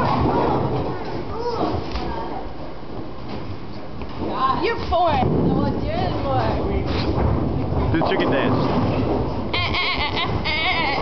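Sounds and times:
girl laughing high-pitched: 9.6s - 11.0s.

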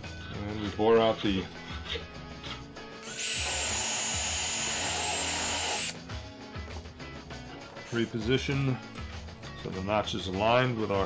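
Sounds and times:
cordless drill whining: 3.0s - 6.0s.

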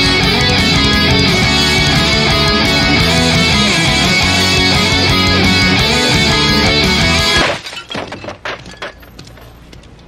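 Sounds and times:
heavy rock music from a boombox: 0.0s - 7.4s
boombox smashing: 6.1s - 9.2s
crash and sharp cracking: 6.5s - 9.4s.

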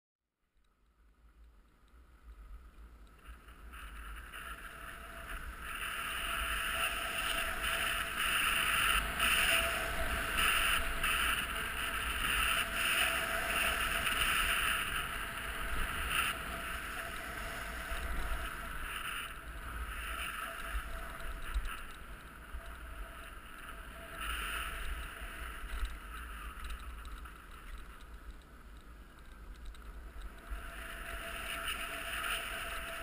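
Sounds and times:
low wind rumble on microphone: 0.9s - 33.0s
hiss and scrape on snow: 2.7s - 28.4s, 29.2s - 33.0s.

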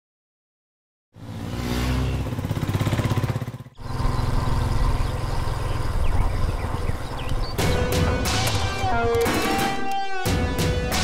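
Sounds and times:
motorcycle engine revving: 1.2s - 9.3s.

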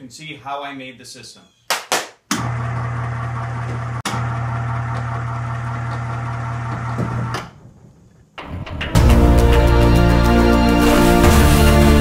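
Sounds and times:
electric hoist motor hum: 2.4s - 7.6s
music: 8.8s - 12.0s.

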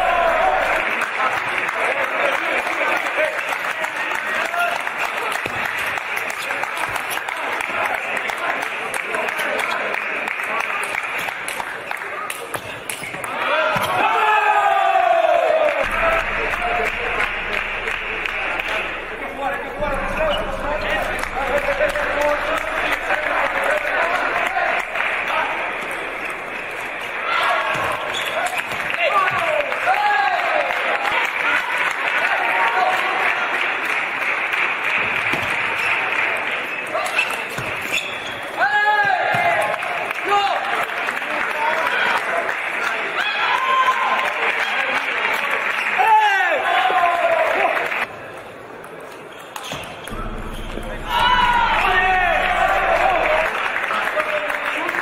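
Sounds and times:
players shouting: 0.0s - 1.0s.

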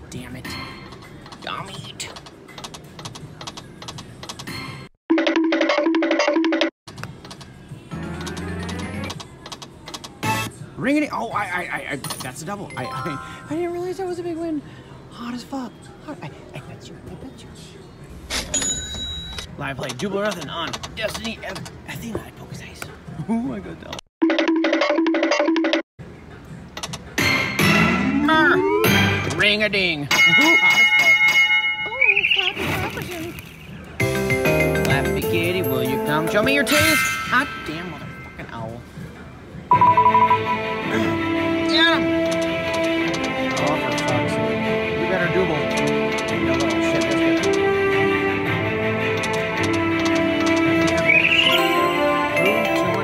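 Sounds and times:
slot machine reels clicking: 8.0s - 10.1s, 49.1s - 51.2s
electronic jingle: 39.7s - 41.0s, 51.1s - 53.0s.

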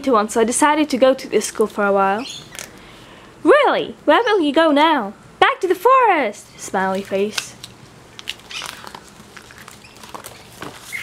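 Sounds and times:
plastic sheet rustling: 6.8s - 11.0s.

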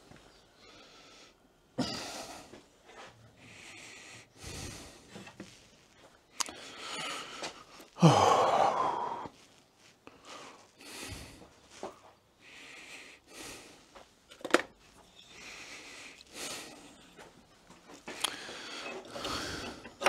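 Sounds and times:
quiet breathing: 0.0s - 20.0s
man sighing loudly: 8.0s - 9.3s.

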